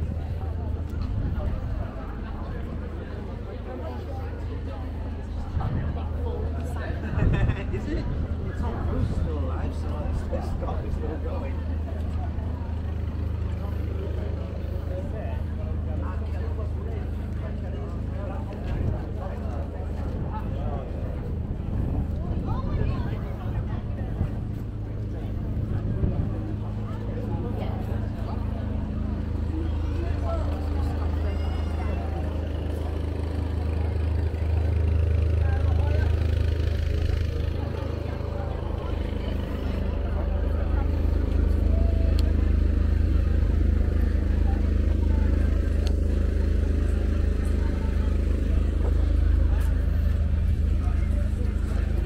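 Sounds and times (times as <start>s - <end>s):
passers-by talking: 0.0s - 52.0s
steady low hum: 0.0s - 52.0s.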